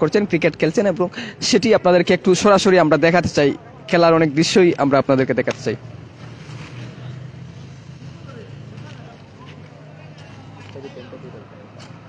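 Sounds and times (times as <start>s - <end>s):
car passing: 5.2s - 12.0s.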